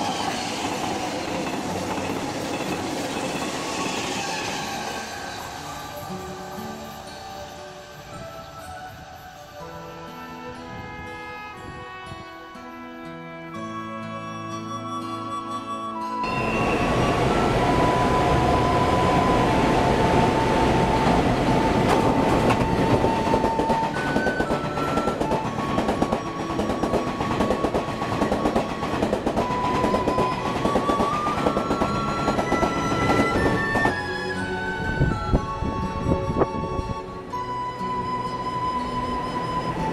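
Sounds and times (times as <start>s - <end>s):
train rumbling past: 0.0s - 8.2s, 16.2s - 39.9s
gentle background music: 4.9s - 39.9s.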